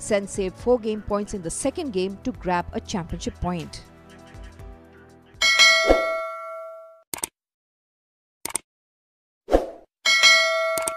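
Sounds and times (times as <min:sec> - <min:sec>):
soft background music: 0:00.0 - 0:05.9
quick clicks: 0:07.1 - 0:07.3, 0:08.4 - 0:08.6.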